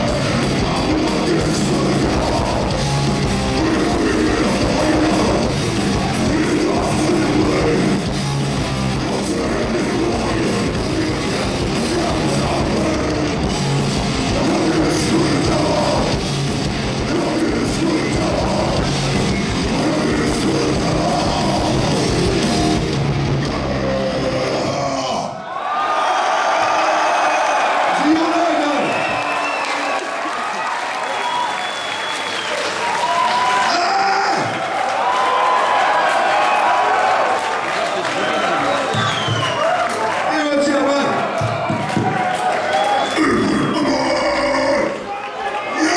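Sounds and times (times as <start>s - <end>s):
death metal band playing: 0.0s - 25.1s
harsh metal vocal growl: 0.0s - 25.4s, 43.2s - 45.1s.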